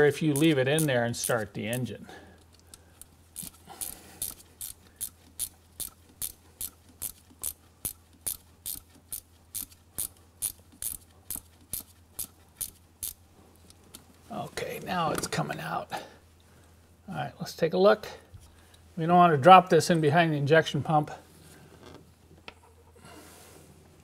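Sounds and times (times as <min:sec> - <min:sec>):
ratcheting wrench clicking: 0:00.3 - 0:13.2.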